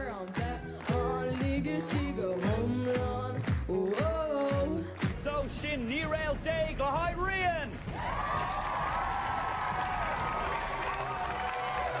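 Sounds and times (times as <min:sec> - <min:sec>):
audience applauding and cheering: 0:00.0 - 0:05.4, 0:07.3 - 0:12.0.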